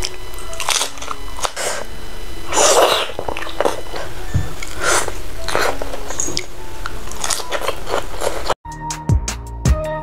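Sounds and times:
biting and chewing fried chicken: 0.0 - 1.9, 2.5 - 8.6.

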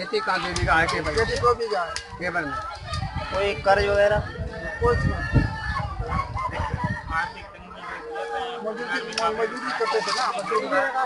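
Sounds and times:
people's voices: 0.0 - 11.0
low rumbling on microphone: 2.0 - 7.8.

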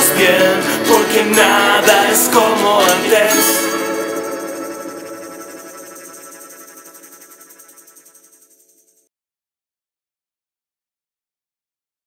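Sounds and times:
electric guitar chord ringing: 0.0 - 8.4
cymbals ringing: 0.9 - 8.2.

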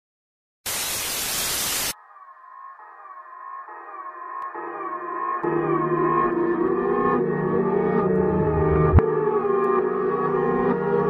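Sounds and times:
static hiss burst: 0.6 - 2.0
quiet music with repeating tones: 2.0 - 11.0.

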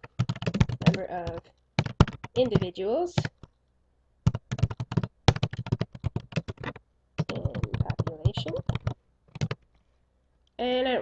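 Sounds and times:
typing on a keyboard: 0.0 - 3.6, 4.3 - 9.6.

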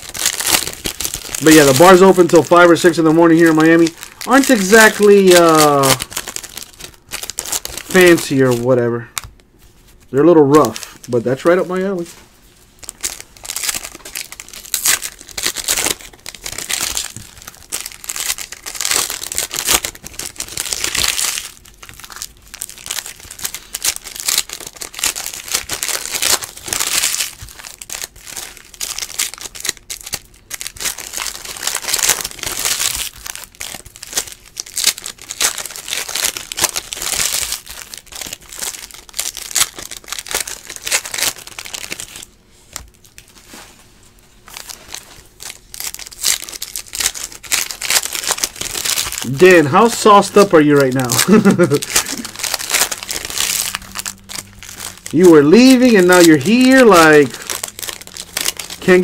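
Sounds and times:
foil wrappers tearing and crinkling: 0.0 - 43.8, 44.4 - 59.0.

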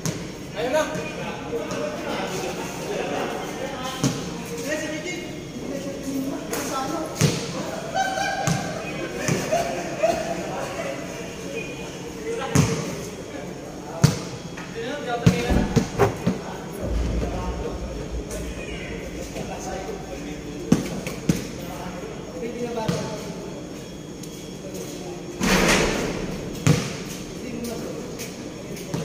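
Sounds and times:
indistinct voices: 15.4 - 22.7.

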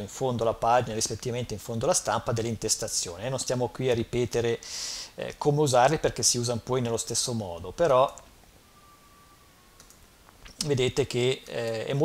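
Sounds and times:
man speaking: 0.0 - 8.2, 10.6 - 12.0
computer mouse click: 9.8 - 10.7.

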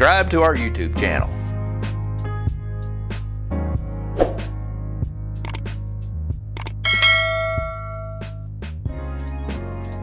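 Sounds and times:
background music with bass line: 0.0 - 10.0
bell chime: 6.8 - 8.4.

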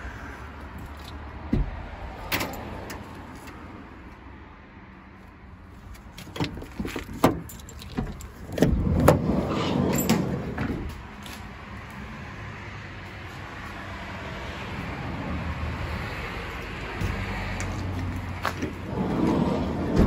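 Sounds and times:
sliding door rolling on track: 8.5 - 10.8, 18.6 - 20.0.

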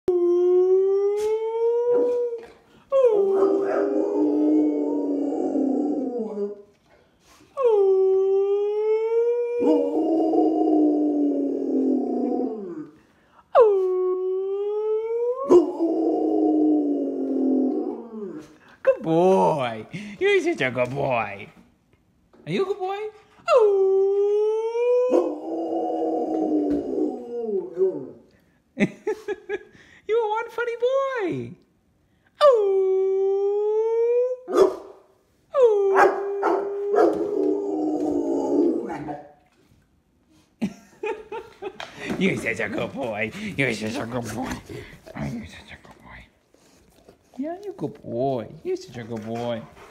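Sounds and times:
dog howling: 0.1 - 6.7, 7.6 - 13.0, 13.6 - 18.6, 23.5 - 28.2, 35.6 - 39.4.

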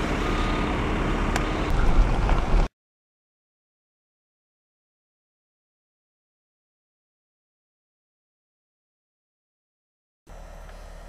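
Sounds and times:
heavy truck engines rumbling: 0.0 - 2.7.

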